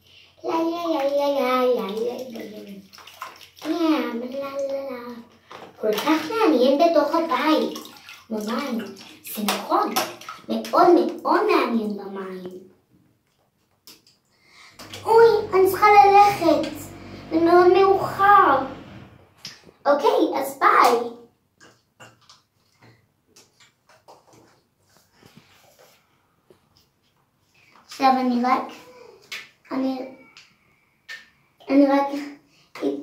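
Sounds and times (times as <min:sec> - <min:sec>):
light water splashing: 0:00.9 - 0:11.3, 0:13.2 - 0:19.8
child sing-song voice: 0:14.9 - 0:18.8.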